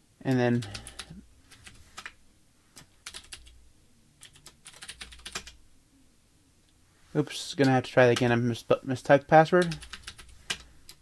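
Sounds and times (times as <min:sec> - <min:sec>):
faint keyboard typing: 0:00.3 - 0:03.6, 0:04.2 - 0:05.6, 0:07.6 - 0:08.3, 0:09.5 - 0:11.0.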